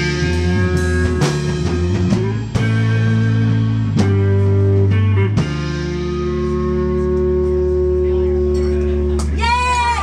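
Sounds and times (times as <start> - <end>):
low bass note: 0.0 - 9.2.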